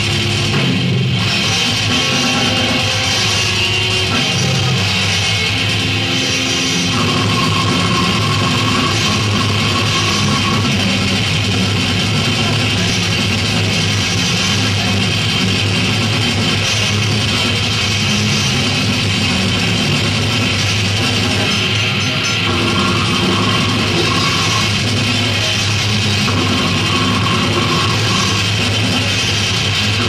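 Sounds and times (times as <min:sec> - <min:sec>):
death metal band playing live: 0:00.0 - 0:30.0.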